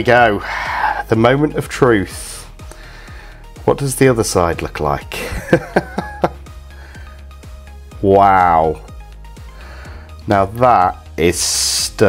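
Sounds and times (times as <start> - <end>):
background music: 0.0 - 12.0
person laughing: 5.2 - 6.5.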